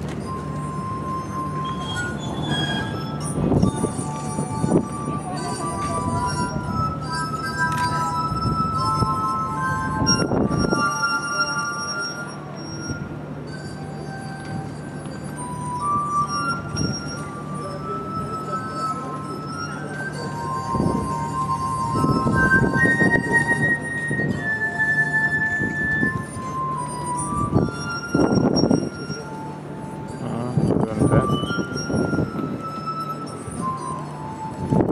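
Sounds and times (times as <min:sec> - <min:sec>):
glass harp tones: 0:00.0 - 0:34.9.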